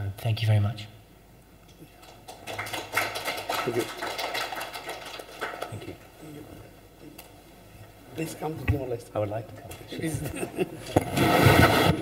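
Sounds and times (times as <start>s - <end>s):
audience applause: 2.0s - 6.1s.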